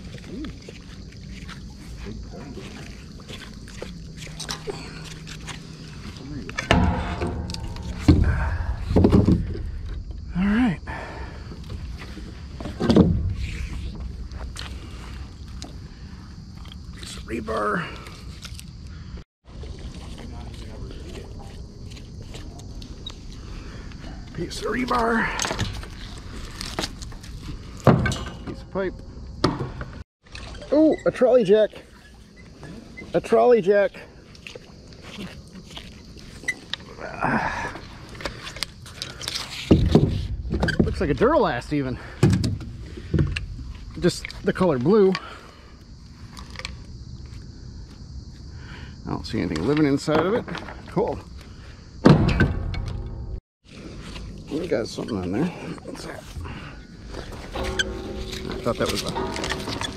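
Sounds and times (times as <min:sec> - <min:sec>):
metal clinks and scrapes: 0:02.6 - 0:08.7, 0:57.1 - 0:59.9
steady low rumble: 0:03.0 - 0:12.6.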